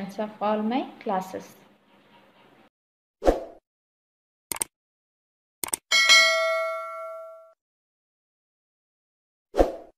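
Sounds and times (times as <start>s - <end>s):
bright bell ding: 5.9s - 7.6s.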